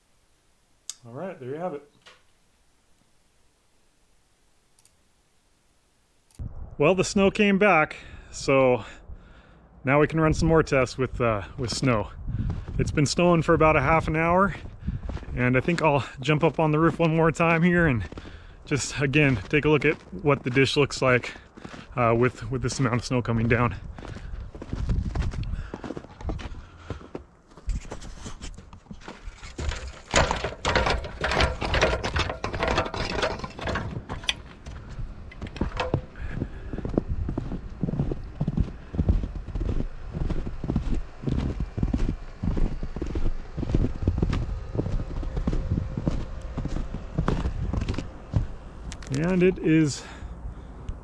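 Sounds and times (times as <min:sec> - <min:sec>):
footsteps in snow: 0:11.4 - 0:50.2
knocks and scrapes: 0:27.6 - 0:36.4.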